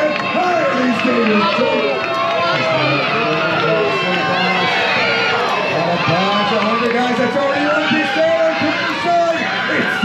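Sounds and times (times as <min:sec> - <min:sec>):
crowd chatter: 0:00.0 - 0:10.0
man announcing: 0:00.0 - 0:10.0.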